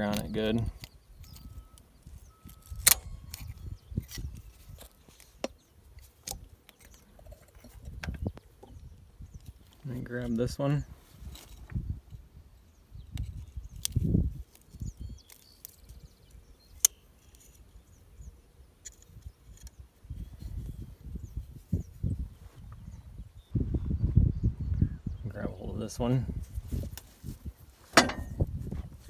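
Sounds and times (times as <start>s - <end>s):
pliers metal clicks: 0.1s - 5.6s.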